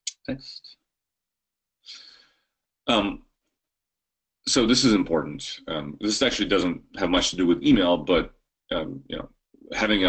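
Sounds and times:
soft breath: 0:01.8 - 0:02.6.

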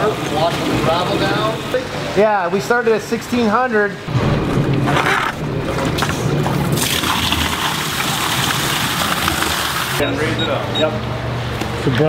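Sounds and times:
low hum: 0:04.0 - 0:09.6
water running and sloshing: 0:05.5 - 0:10.0.

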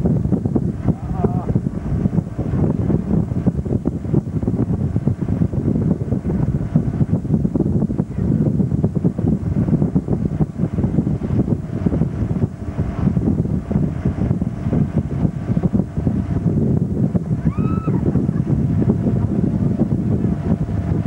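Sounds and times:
boat engine: 0:00.0 - 0:21.0
churning wake: 0:00.0 - 0:21.0
wind buffeting microphone: 0:00.0 - 0:21.0.

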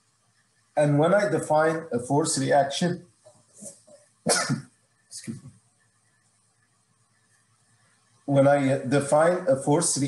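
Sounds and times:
man coughing: 0:04.3 - 0:04.7.

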